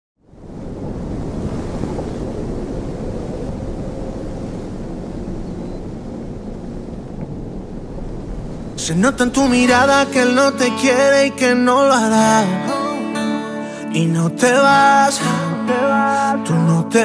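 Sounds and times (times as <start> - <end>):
steady rushing noise: 0.3 - 10.5.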